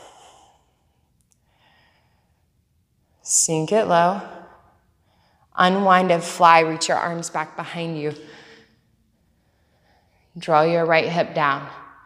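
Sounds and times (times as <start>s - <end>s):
soft breath: 0.0s - 3.2s, 4.4s - 5.6s, 8.2s - 10.4s.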